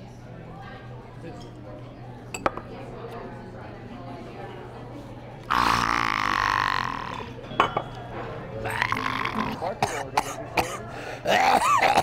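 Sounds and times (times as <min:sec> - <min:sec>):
man belching loudly: 0:05.5 - 0:07.3, 0:08.6 - 0:12.0.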